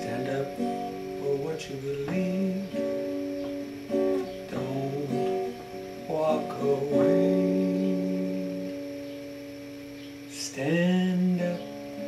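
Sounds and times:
acoustic guitar chord ringing: 0:00.0 - 0:12.0.

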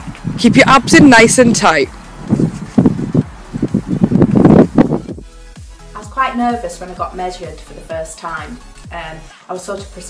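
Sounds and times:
outdoor wind and rustling: 0:00.0 - 0:05.3
background music with held notes: 0:01.8 - 0:10.0.

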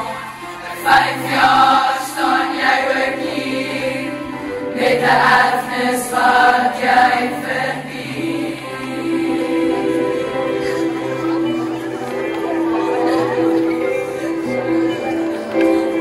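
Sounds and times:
girls choir singing: 0:00.0 - 0:16.0.

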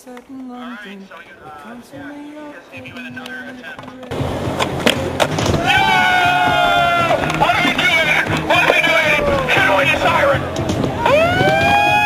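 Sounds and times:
skateboard wheels rolling on concrete: 0:00.0 - 0:12.0
skateboard clacks: 0:02.9 - 0:11.9.

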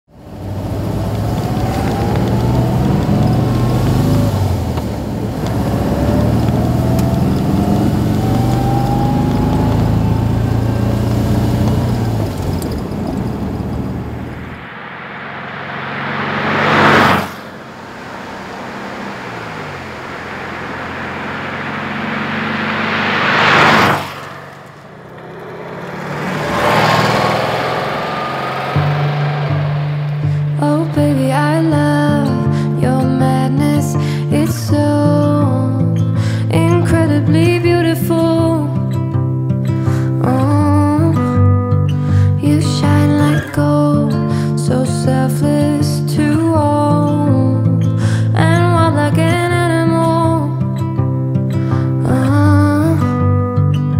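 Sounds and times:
car engine accelerating: 0:00.1 - 0:53.9
car driving past: 0:00.2 - 0:34.8.

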